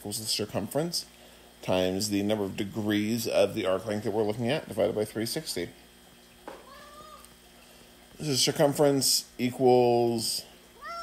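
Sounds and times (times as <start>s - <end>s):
pet's high-pitched cry: 6.6s - 7.3s, 10.8s - 11.0s.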